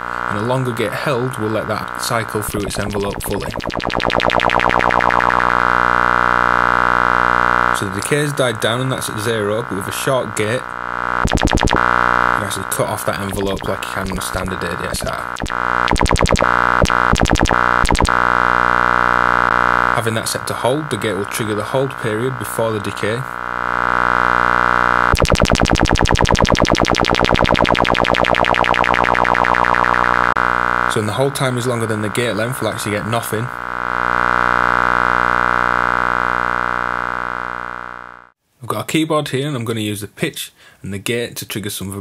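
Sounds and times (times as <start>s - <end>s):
synthesizer tone: 2.5s - 7.5s, 11.1s - 12.4s, 13.3s - 19.5s, 23.7s - 30.4s.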